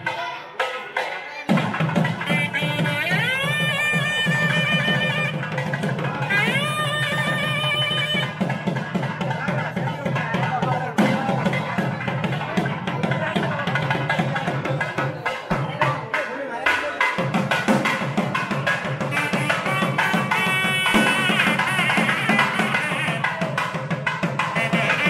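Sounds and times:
steady drum rhythm: 0:00.0 - 0:25.0.

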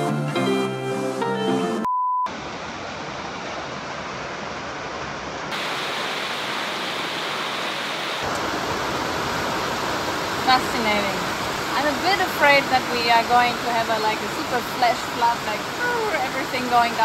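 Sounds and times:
heavy rain pouring: 0:02.3 - 0:17.0.

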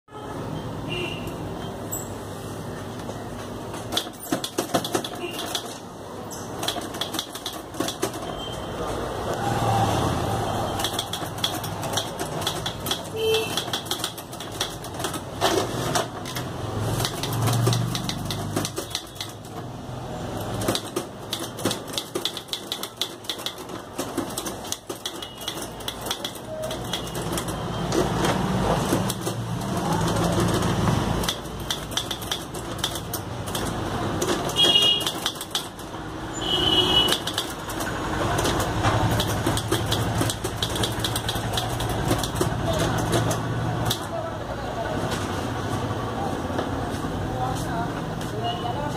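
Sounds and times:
manual typewriter typing: 0:03.7 - 0:05.9, 0:06.5 - 0:08.5, 0:10.6 - 0:36.0, 0:36.8 - 0:44.3.

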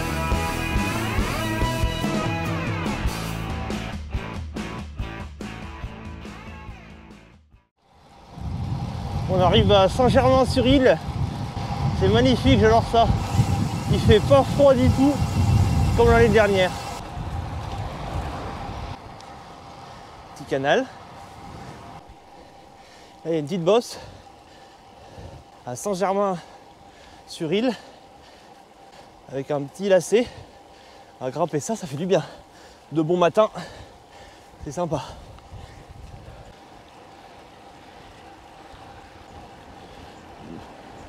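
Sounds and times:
road hiss: 0:00.0 - 0:03.9, 0:07.8 - 0:41.0
wind buffeting microphone: 0:08.0 - 0:41.0.

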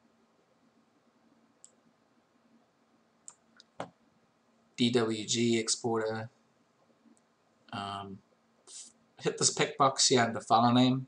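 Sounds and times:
computer mouse clicks: 0:01.6 - 0:01.8, 0:03.2 - 0:04.0.

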